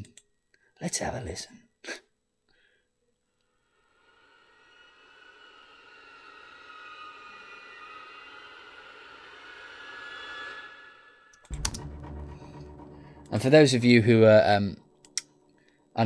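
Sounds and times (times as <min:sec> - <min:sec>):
eerie high string texture: 0:04.0 - 0:15.0.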